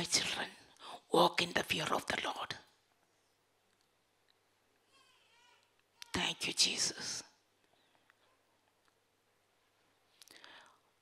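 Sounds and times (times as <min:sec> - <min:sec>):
woman whispering: 0:01.8 - 0:02.6, 0:06.0 - 0:07.4.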